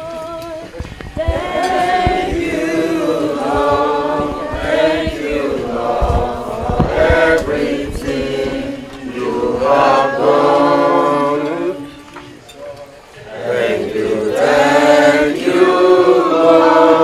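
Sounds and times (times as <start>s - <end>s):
group of people singing: 0.0s - 17.0s.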